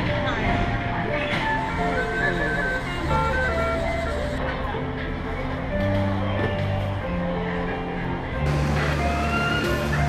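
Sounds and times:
background music with sustained bass: 0.0s - 10.0s.

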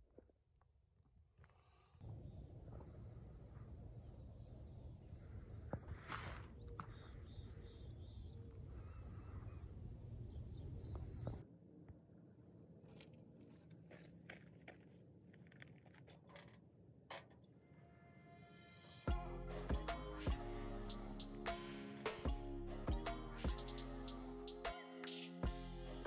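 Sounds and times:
footsteps on dirt road: 12.8s - 16.6s.

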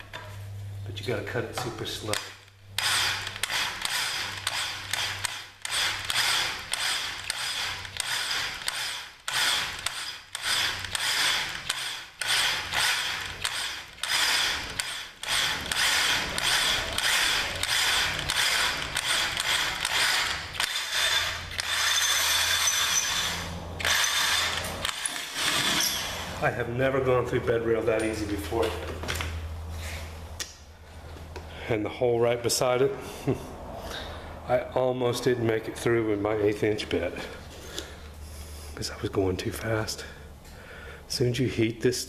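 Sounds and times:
electric drill boring through steel: 2.8s - 26.3s.

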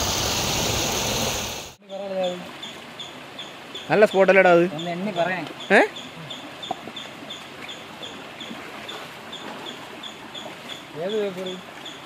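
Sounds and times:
water running over rocks: 1.7s - 12.0s.

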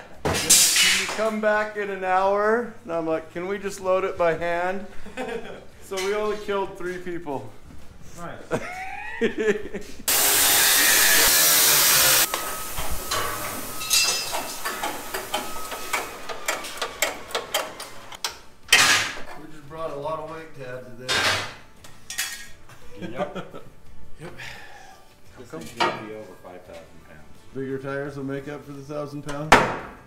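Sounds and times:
metal parts clanking: 0.3s - 1.2s, 13.0s - 19.2s.

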